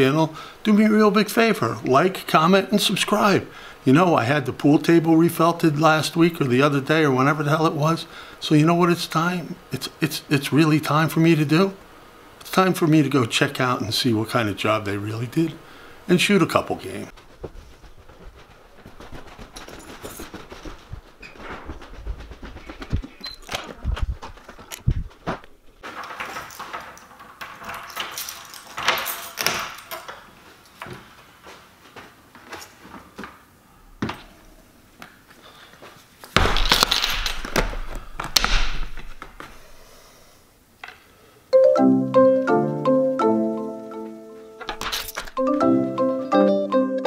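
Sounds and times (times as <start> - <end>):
knocks and rustles of handling: 17.1 - 34.4, 44.5 - 45.4
keys being set down: 25.8 - 30.9, 44.5 - 45.4
door: 44.6 - 45.4.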